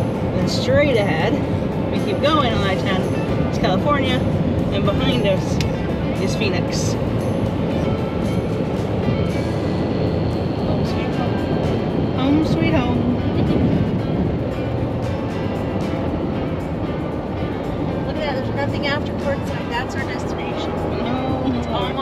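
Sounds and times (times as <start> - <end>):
music playing: 0.0 - 22.0
road and engine noise in cab: 0.0 - 22.0.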